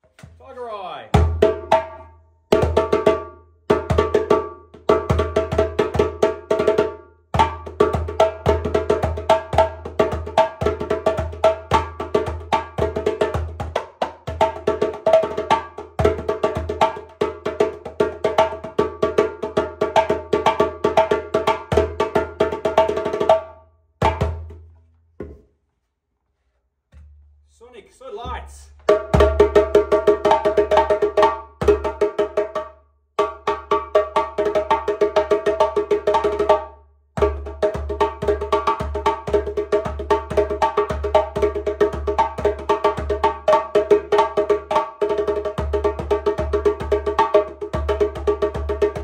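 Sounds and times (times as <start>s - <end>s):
djembe played by hand: 1.1s - 24.6s, 28.8s - 49.0s.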